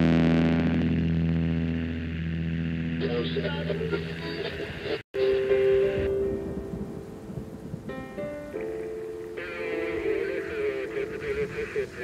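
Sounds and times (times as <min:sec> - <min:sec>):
distorted electric guitar chord: 0:00.0 - 0:04.3.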